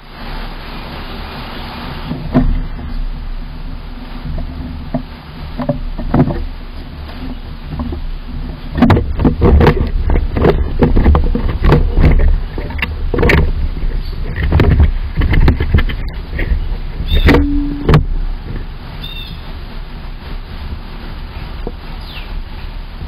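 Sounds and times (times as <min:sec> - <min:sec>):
low rumble: 0:00.0 - 0:21.8.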